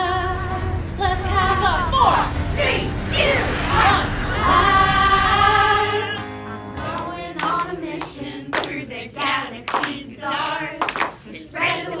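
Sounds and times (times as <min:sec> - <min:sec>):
backing music: 0:00.0 - 0:12.0
group singing: 0:00.0 - 0:12.0
clapping: 0:07.4 - 0:11.9.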